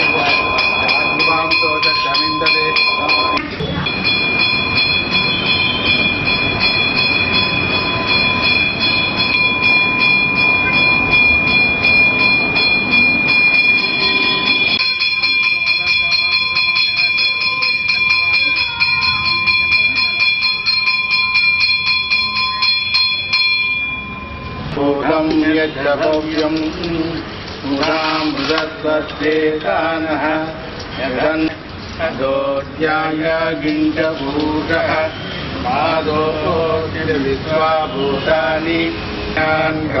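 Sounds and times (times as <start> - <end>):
temple bell ringing: 0.0 - 26.6.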